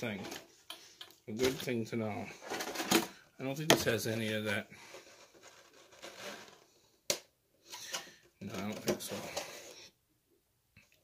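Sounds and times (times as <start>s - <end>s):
plastic parts rustling: 0.0s - 6.8s, 7.7s - 9.8s.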